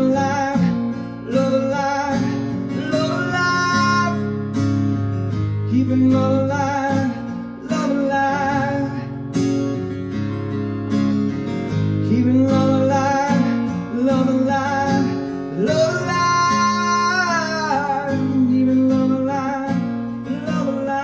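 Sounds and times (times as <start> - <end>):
man singing: 0.0 - 9.4, 12.0 - 21.0
acoustic guitar strumming: 0.0 - 21.0.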